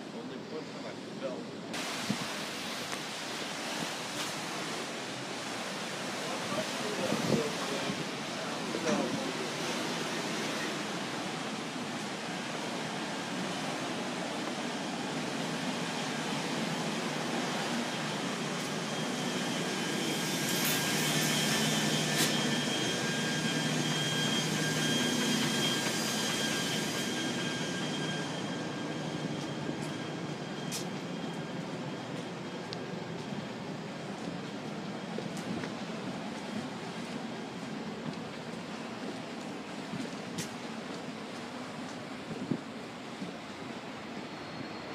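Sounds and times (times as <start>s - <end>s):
water rushing: 0.0s - 44.9s.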